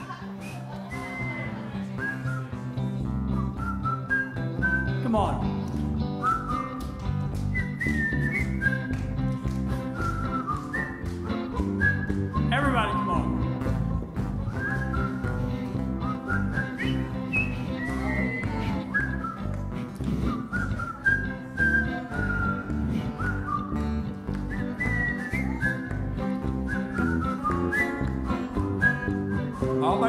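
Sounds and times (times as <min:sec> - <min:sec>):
person whistling a melody: 0:00.4 - 0:05.0, 0:06.2 - 0:13.4, 0:14.5 - 0:30.0.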